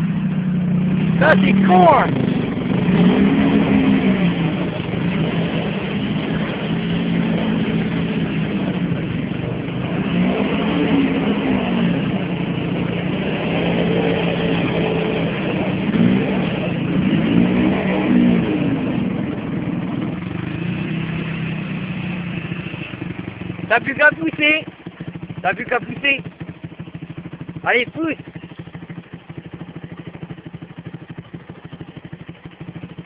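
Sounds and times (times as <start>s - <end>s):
quad engine revving: 0.0s - 33.0s.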